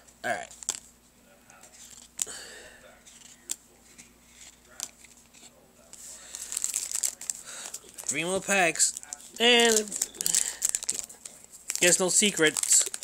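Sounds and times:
plastic and foil crinkling: 3.0 - 13.0.

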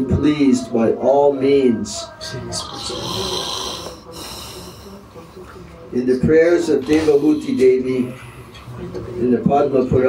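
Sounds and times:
person breathing heavily: 3.0 - 5.1.

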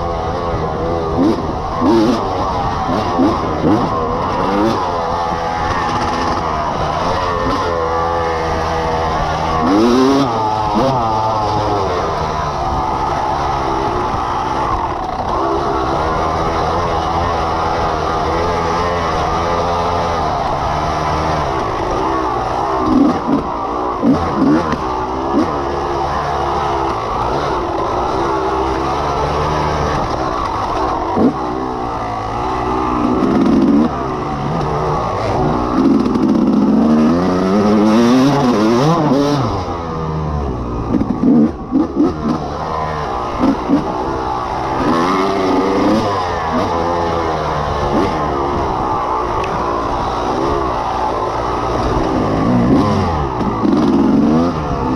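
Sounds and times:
dirt bike engine revving: 0.0 - 54.9.

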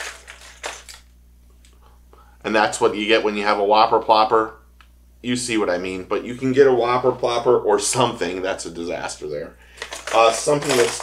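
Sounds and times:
plastic lures clattering together: 0.0 - 1.1, 9.8 - 11.0.

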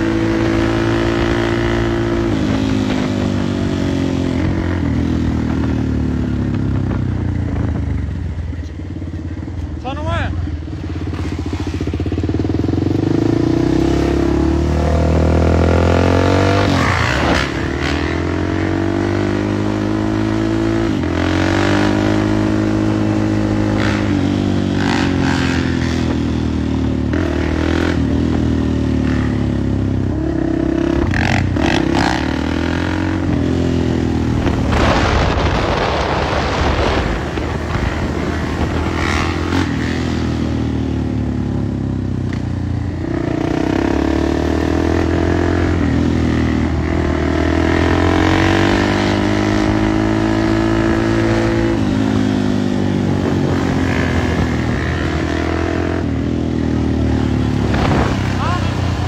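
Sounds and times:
dirt bike engines revving: 0.0 - 59.0
rush of noise: 32.9 - 41.4, 44.8 - 59.0.

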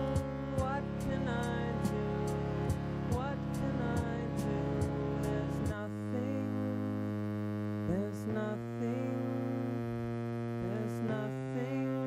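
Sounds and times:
short sliding synth notes: 0.0 - 10.7
low synthesizer drone: 0.0 - 12.0.

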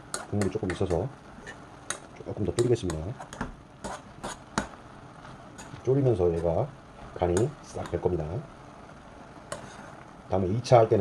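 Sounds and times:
beans simmering: 0.0 - 11.0.

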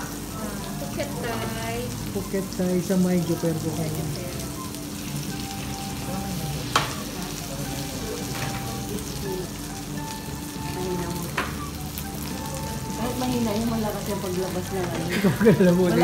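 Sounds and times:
food sizzling on grill: 0.0 - 16.0.

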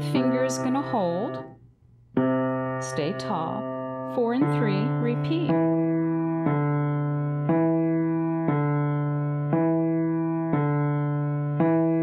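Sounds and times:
slow piano notes: 0.0 - 12.0.

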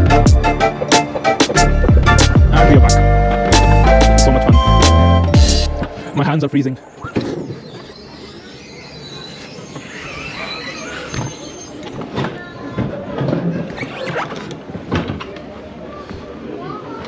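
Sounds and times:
wheels squealing on track: 6.9 - 12.2.

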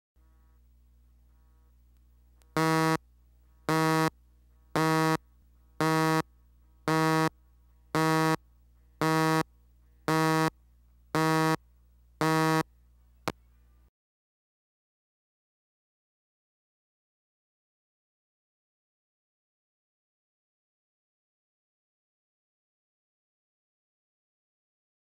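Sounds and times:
faint low hum: 0.2 - 13.9
short buzzing beeps: 2.6 - 3.0, 3.7 - 4.1, 4.8 - 5.2, 5.8 - 6.2, 6.9 - 7.3, 8.0 - 8.4, 9.0 - 9.5, 10.1 - 10.5, 11.2 - 11.6, 12.2 - 12.6.

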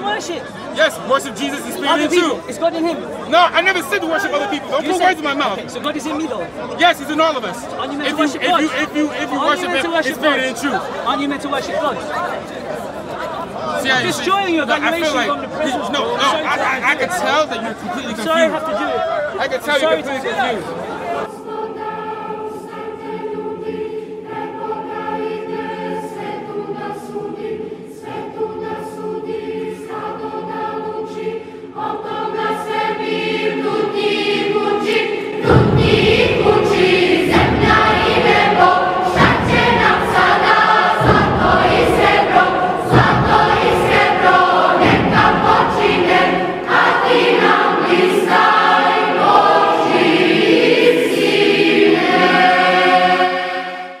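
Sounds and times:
choir singing a hymn: 0.0 - 54.0
heavy beat: 33.0 - 52.4.

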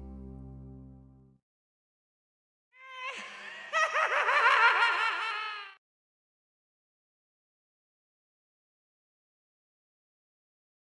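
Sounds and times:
high-pitched giggling laugh: 3.1 - 5.8.

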